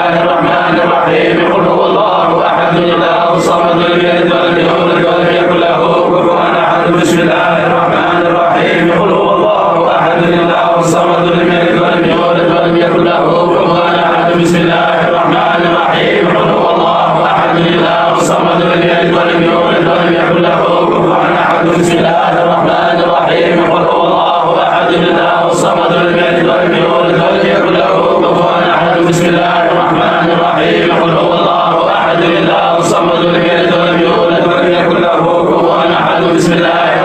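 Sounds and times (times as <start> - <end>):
men chanting: 0.0 - 37.0.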